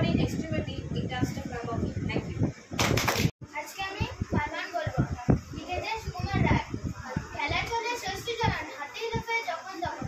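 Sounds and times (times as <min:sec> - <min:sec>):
children chattering and calling out: 0:03.5 - 0:10.0.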